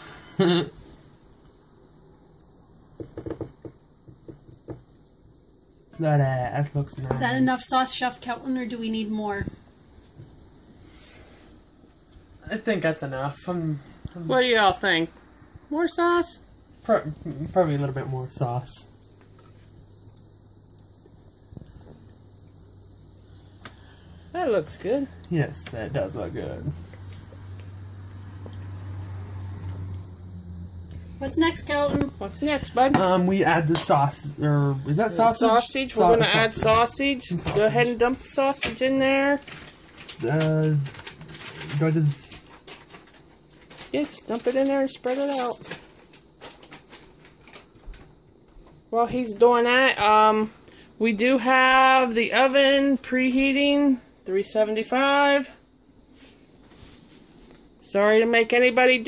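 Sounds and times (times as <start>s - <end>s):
low hum: 16.4s - 38.2s.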